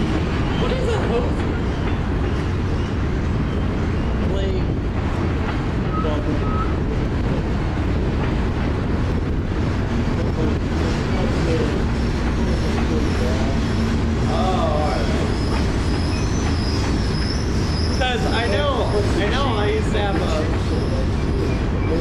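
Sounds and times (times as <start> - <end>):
train wheels running on rails: 0.0 - 22.0.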